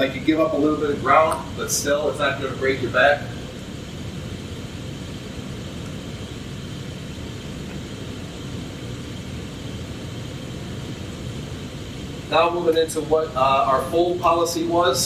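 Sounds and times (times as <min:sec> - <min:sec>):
ventilation system rumble and hiss: 0:00.0 - 0:15.0.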